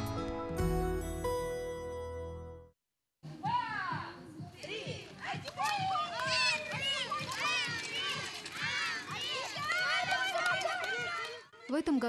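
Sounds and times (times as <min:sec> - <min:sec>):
children shouting and cheering: 0:03.4 - 0:11.8.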